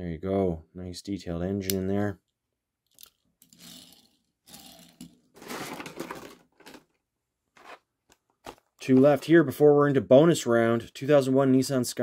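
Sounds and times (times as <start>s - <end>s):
plastic packaging crinkling: 4.6s - 6.9s.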